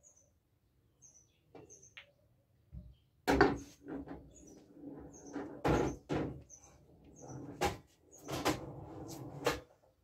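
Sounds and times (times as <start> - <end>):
knocks and clunks around pool table: 2.7 - 4.3, 5.2 - 6.4.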